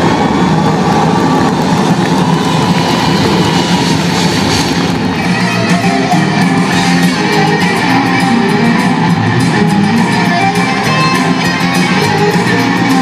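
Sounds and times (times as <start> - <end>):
electric guitar: 0.0 - 13.0
violin: 2.6 - 13.0
symphonic rock band playing live: 3.2 - 13.0.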